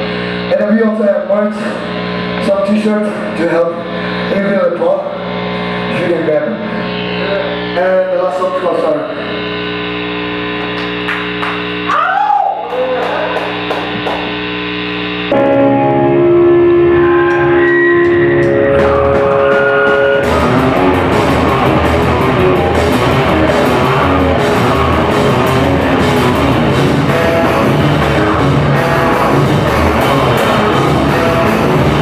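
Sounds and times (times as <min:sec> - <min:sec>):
electric guitar sustained notes: 0:00.0 - 0:32.0
drums and cymbals: 0:18.7 - 0:32.0.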